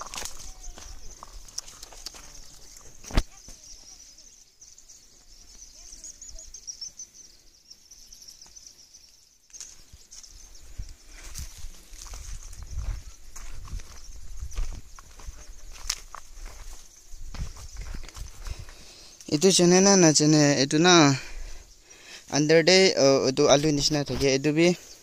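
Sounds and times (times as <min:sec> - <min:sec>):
footsteps through leafy plants: 0:00.0 - 0:04.2, 0:09.5 - 0:19.8, 0:23.4 - 0:24.5
high insect chirring: 0:00.0 - 0:25.0.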